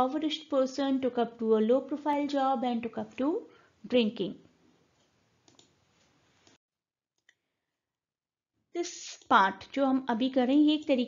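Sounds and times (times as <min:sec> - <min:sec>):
computer mouse click: 0:05.0 - 0:05.8.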